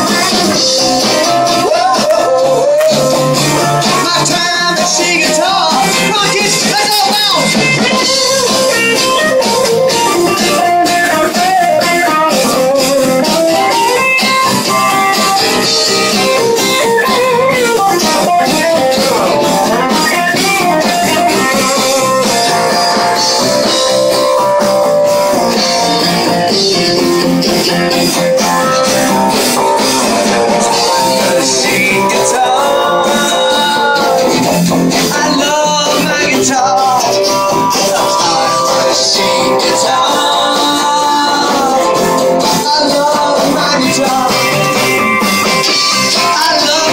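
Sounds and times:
guitar band instrumental: 0.0 - 46.9.

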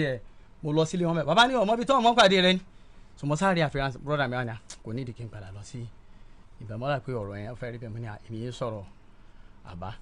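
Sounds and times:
man talking: 0.0 - 6.0, 6.6 - 9.0, 9.6 - 10.0.

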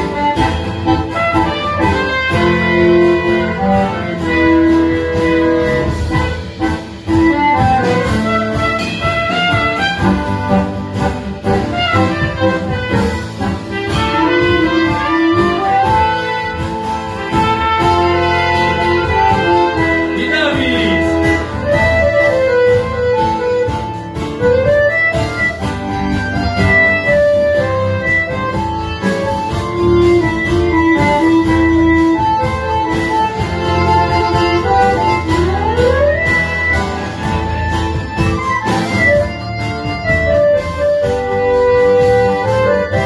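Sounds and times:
sliding lead melody: 0.0 - 43.0.

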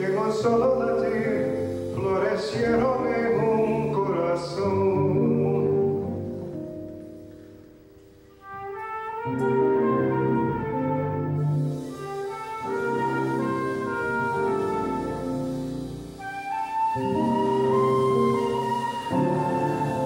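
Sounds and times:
flute melody: 0.0 - 20.0
guitar accompaniment: 0.0 - 20.0
piano: 0.0 - 20.0.

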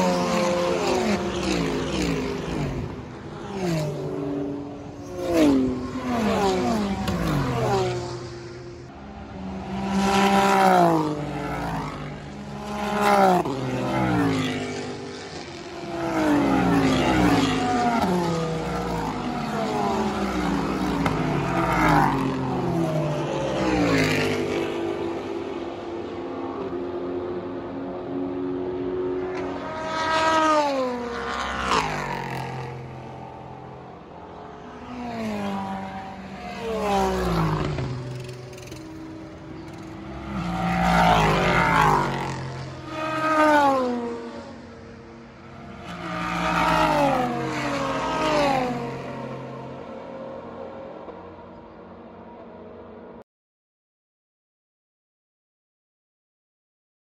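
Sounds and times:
race cars passing at speed: 0.0 - 53.2.

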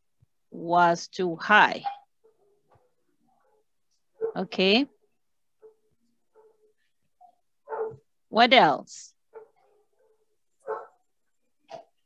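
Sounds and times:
dog barking: 1.8 - 4.5, 5.6 - 8.1, 9.3 - 11.1.

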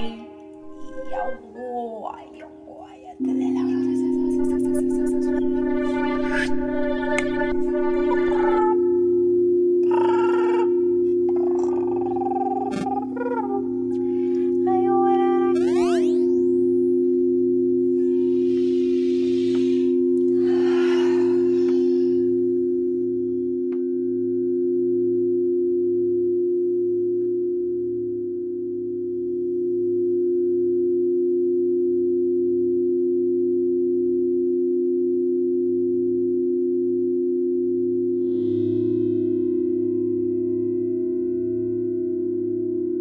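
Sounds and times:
singing bowls ringing: 3.2 - 12.3, 16.2 - 24.3
soft breathy rushing: 18.0 - 22.6.

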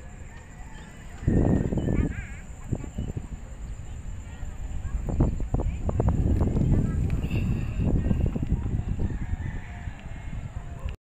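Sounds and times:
faint drawn-out animal call: 0.0 - 3.1.

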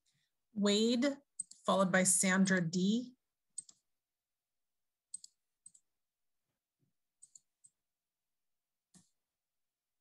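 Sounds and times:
computer mouse clicks: 1.3 - 1.7, 3.5 - 3.9, 5.1 - 5.9, 7.2 - 7.8.

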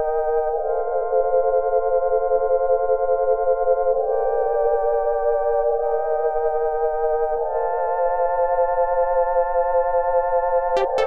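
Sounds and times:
held synthesizer chord: 10.8 - 11.0.

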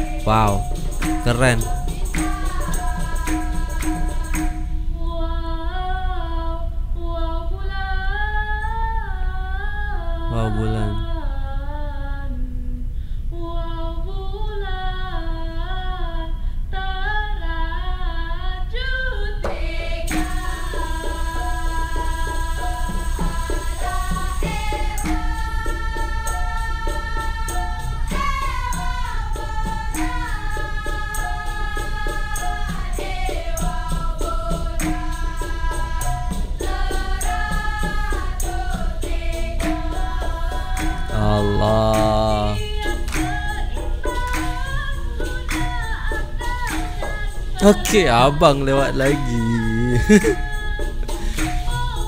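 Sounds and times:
woman singing unaccompanied: 0.0 - 52.0
group hand-clapping: 0.1 - 4.6, 20.1 - 20.4, 34.8 - 35.1, 39.6 - 39.9, 40.8 - 43.6, 44.2 - 44.8, 45.5 - 45.9, 46.6 - 47.2, 49.0 - 50.4, 51.3 - 51.8
group chanting in unison: 32.0 - 43.2, 47.6 - 50.4.

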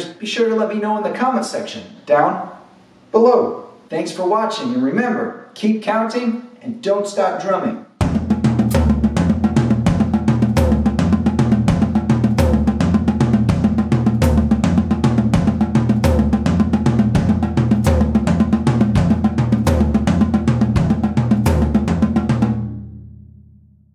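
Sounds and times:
drum kit groove: 8.0 - 22.9.

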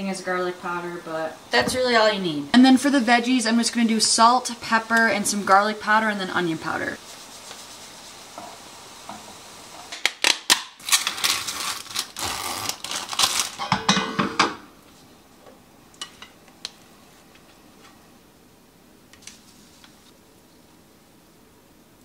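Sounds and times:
faint sizzle from a skillet: 0.0 - 10.1, 19.1 - 21.4.

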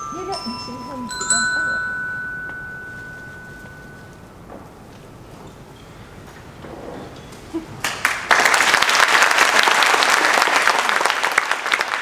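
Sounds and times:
glockenspiel note ringing: 0.0 - 4.5.

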